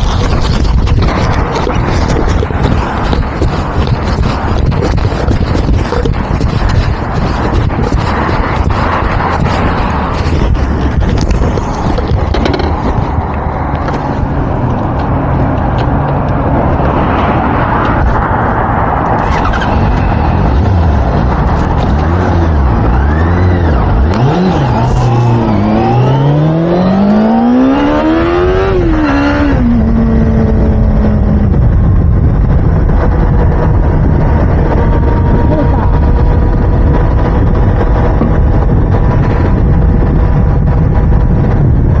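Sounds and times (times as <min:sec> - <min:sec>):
heavy low rumble: 0:00.0 - 0:42.0.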